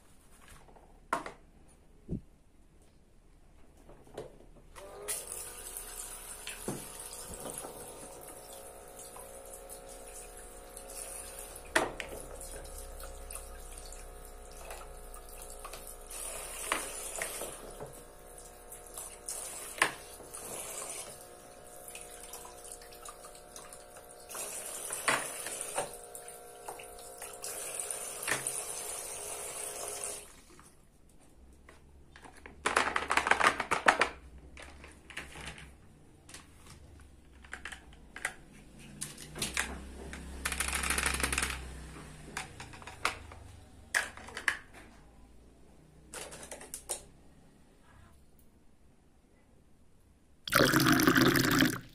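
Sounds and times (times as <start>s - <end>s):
toy water pump humming: 4.9s - 30.3s, 50.5s - 51.9s
water running into basin: 5.2s - 30.5s, 50.5s - 51.9s.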